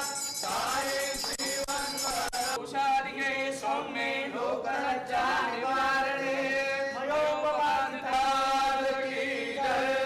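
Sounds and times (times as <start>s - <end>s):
men chanting a devotional prayer: 0.0s - 10.0s.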